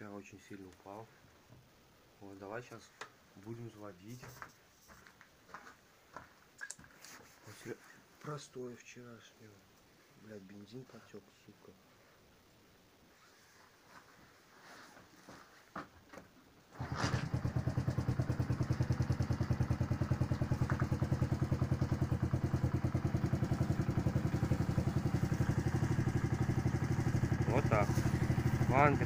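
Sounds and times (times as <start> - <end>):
motorcycle engine idling: 16.8 - 29.0.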